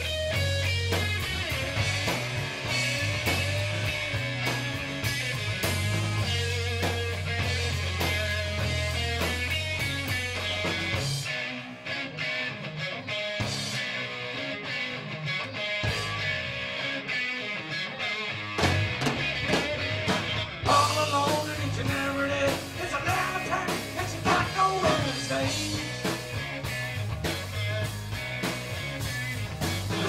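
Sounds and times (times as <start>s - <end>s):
bass guitar: 0.0s - 30.0s
drums: 0.0s - 30.0s
electric guitar: 0.0s - 30.0s.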